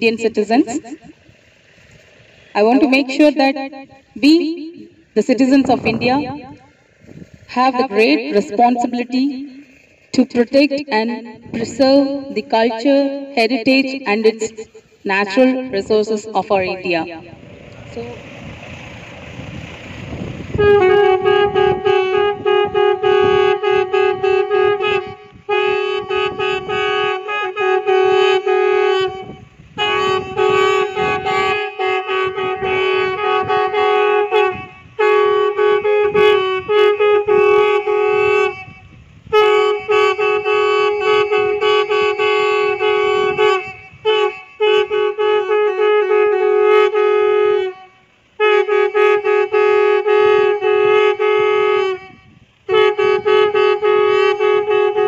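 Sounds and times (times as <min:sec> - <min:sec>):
conch shells blowing: 0:20.6 - 0:55.0.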